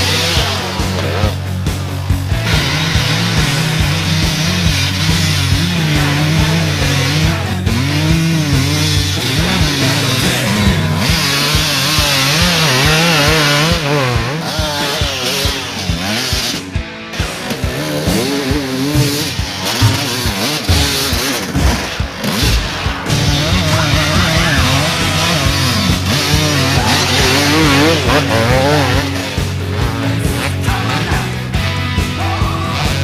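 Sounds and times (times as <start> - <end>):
dirt bike engine revving: 0.0 - 33.0
heavy metal rock music: 0.0 - 33.0.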